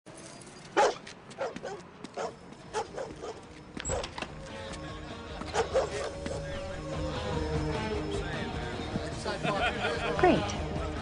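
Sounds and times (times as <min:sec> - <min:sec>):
dog barking: 0:00.8 - 0:04.1, 0:05.5 - 0:06.2.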